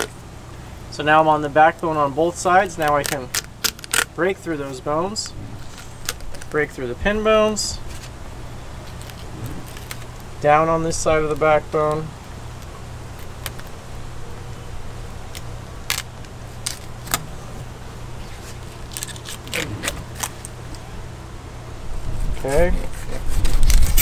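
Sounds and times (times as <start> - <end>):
steady low hum: 0.0 - 24.0
person speaking: 0.9 - 3.4, 4.1 - 5.6, 6.4 - 7.9, 10.4 - 12.2.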